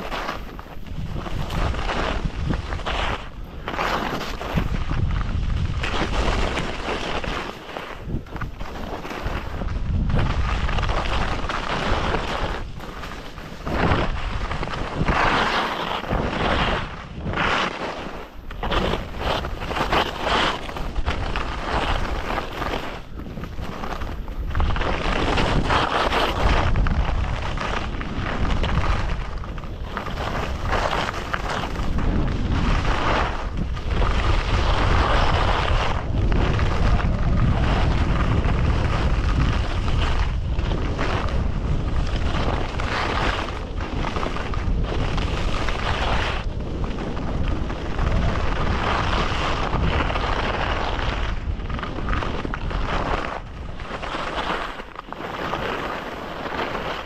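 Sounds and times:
skis scraping over snow: 0.0s - 57.0s
wind buffeting microphone: 0.0s - 57.0s
deep rumble: 26.4s - 54.1s.

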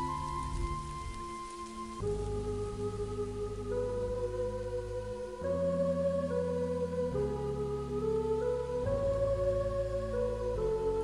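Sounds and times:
dry leaves rustling: 0.0s - 3.4s
ambient meditation music: 0.0s - 11.0s.

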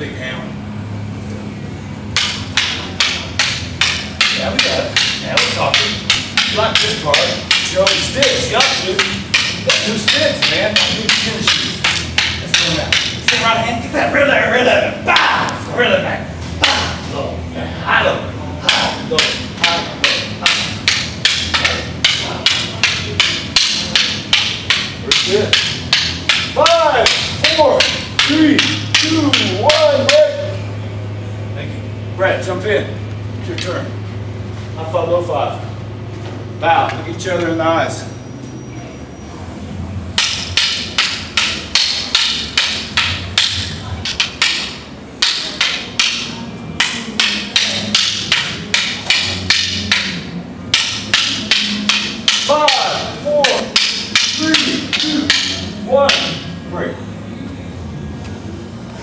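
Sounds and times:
wooden sticks clacking: 2.1s - 13.7s, 15.1s - 15.6s, 16.6s - 17.0s, 18.6s - 30.6s, 40.1s - 56.6s.

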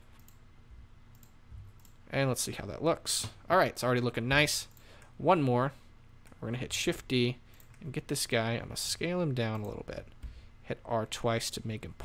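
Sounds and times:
computer mouse clicks: 0.1s - 0.4s, 1.1s - 2.0s.

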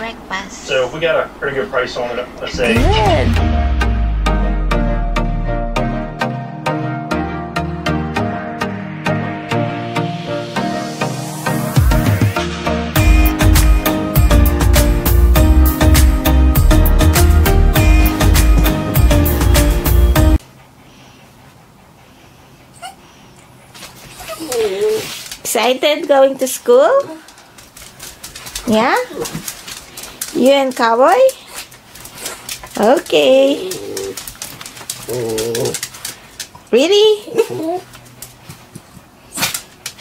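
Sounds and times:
dog whimper: 22.7s - 25.2s, 33.4s - 34.2s, 35.1s - 35.8s, 37.2s - 38.0s.

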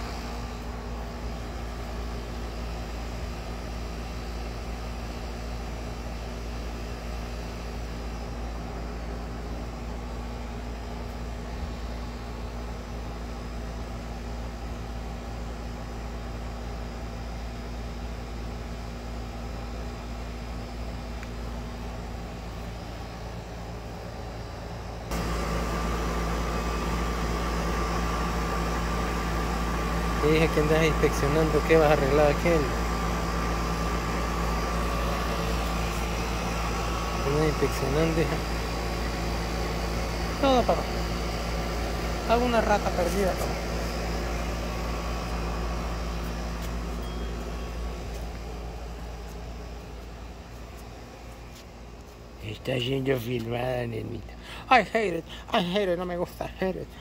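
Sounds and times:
air conditioner humming: 0.0s - 57.0s
steady whine: 0.0s - 57.0s.

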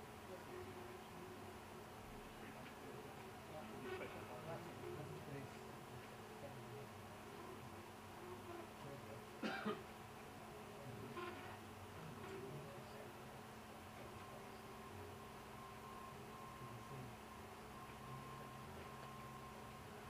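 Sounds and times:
three d printer running: 0.0s - 20.0s
thin steady tone: 10.4s - 20.0s.

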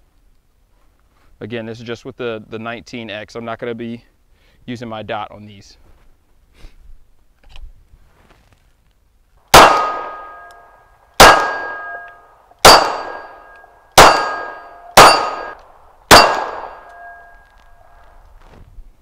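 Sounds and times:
pistol shots: 9.5s - 10.6s, 11.2s - 17.4s
steel target plate ringing: 9.5s - 18.0s.

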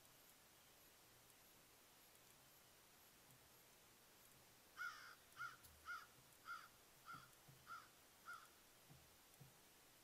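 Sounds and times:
bird calling: 4.8s - 8.6s.

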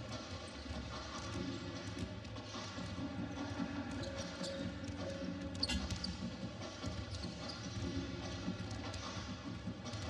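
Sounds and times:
sneaker squeaks: 4.0s - 8.4s.

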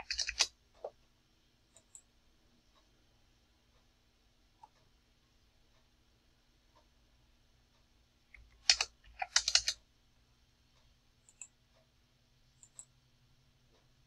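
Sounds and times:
computer keyboard keystrokes: 0.0s - 0.5s, 8.4s - 9.8s.

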